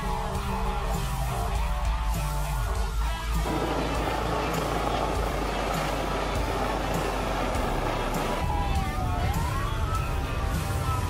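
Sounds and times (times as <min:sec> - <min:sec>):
helicopter flying overhead: 0:02.7 - 0:11.0.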